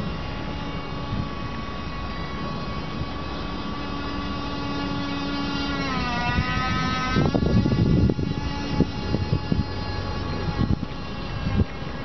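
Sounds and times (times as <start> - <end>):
electric motor whining: 0.0 - 12.0.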